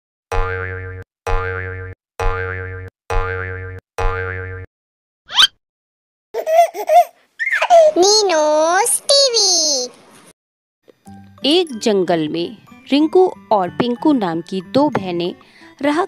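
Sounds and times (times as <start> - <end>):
cartoon boing with pitch wobble: 0.3 - 4.7
cartoonish voice: 7.5 - 9.9.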